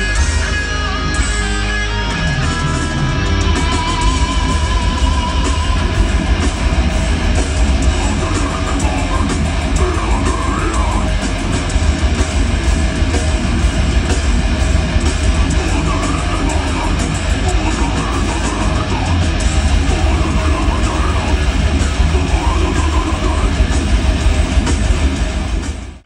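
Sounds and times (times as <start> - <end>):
distorted electric guitars: 0.0 - 26.0
fast drumming: 2.3 - 26.0.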